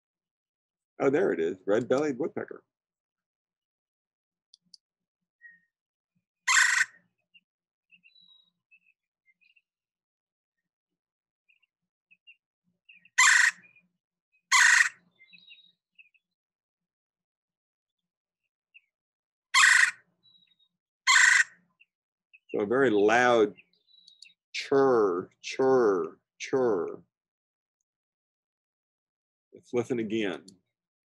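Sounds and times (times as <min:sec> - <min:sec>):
faint bird chirps: 0:05.4 - 0:05.8, 0:06.8 - 0:09.7, 0:11.4 - 0:14.0, 0:15.0 - 0:16.4, 0:20.2 - 0:20.8, 0:21.7 - 0:25.0
woodpecker harsh churr call: 0:06.4 - 0:07.1, 0:12.9 - 0:13.8, 0:14.5 - 0:15.7, 0:19.5 - 0:21.7.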